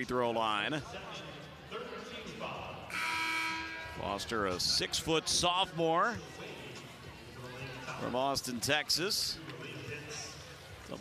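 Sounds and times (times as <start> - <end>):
arena horn buzzing: 2.9 - 4.1.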